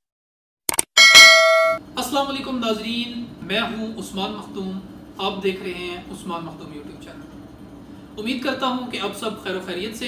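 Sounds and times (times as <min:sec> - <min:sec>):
bright bell-like ding: 0:01.0 - 0:01.8.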